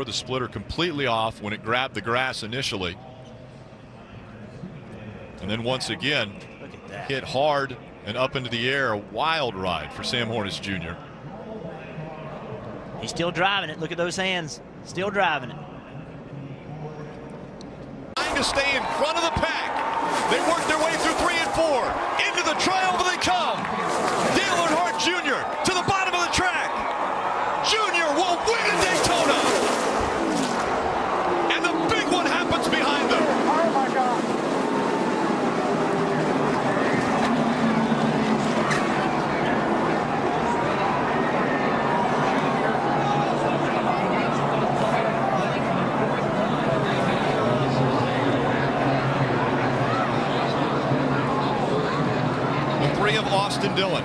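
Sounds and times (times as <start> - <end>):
crowd roar: 18.2 - 54.0
race car engines droning: 18.2 - 54.0
cars crashing: 27.6 - 41.5.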